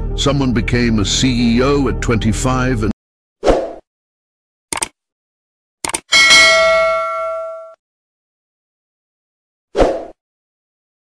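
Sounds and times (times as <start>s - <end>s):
notification bell ding: 6.1s - 7.8s.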